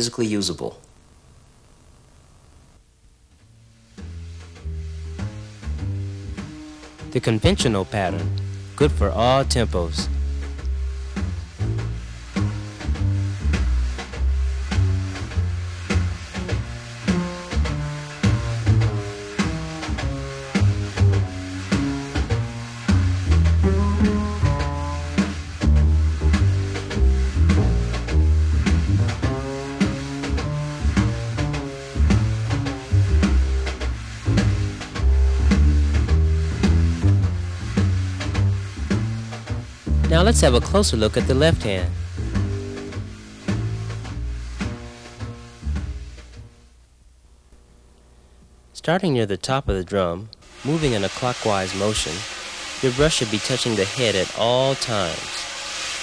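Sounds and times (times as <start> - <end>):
wire brushes on snare drum: 3.9 - 46.6, 50.4 - 56.0
walking bass line: 4.0 - 46.5.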